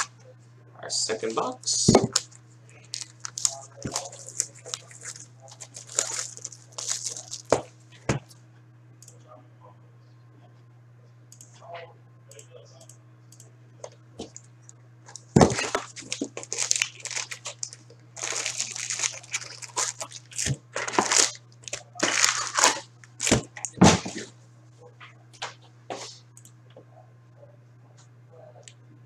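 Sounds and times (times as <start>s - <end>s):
steady low hum: 0.0s - 29.0s
foil wrappers crinkling: 2.0s - 7.8s, 15.1s - 24.2s.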